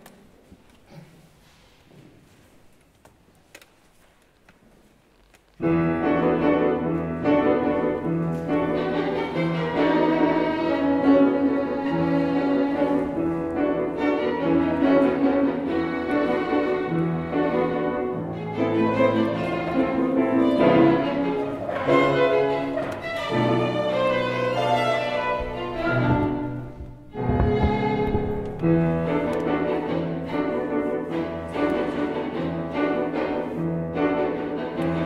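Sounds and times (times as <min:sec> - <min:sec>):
piano: 0:05.6 - 0:35.0
violin: 0:05.6 - 0:35.0.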